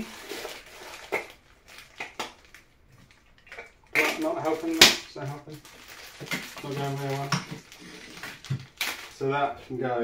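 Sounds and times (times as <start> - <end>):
plastic packaging clicks and crinkles: 0.0 - 9.4
plastic packaging rustling: 0.0 - 9.5.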